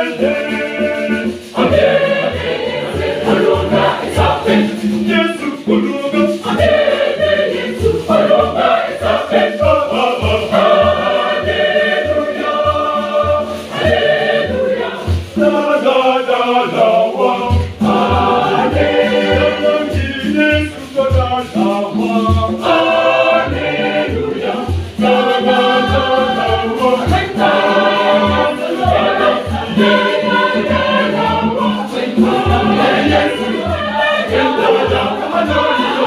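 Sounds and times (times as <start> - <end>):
conga drums beating: 0.0 - 36.0
mixed choir singing gospel: 0.0 - 36.0.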